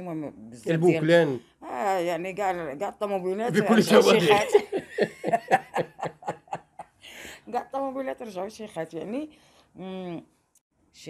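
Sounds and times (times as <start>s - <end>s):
people laughing: 3.5s - 6.9s.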